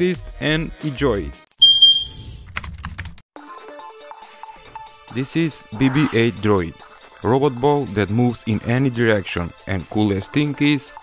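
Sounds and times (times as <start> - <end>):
soft background music: 3.4 - 11.0.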